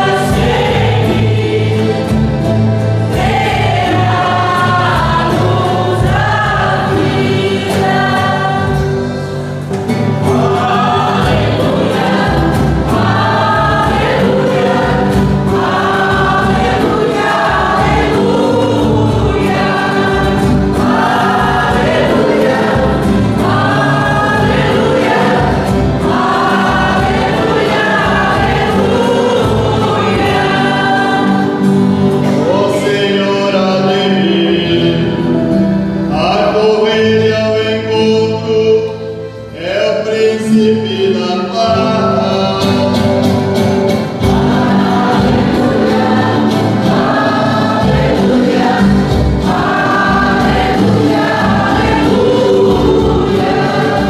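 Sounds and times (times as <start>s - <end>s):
accordion: 0.0s - 54.0s
group singing a hymn: 0.0s - 54.0s
strummed acoustic guitars: 0.0s - 54.0s.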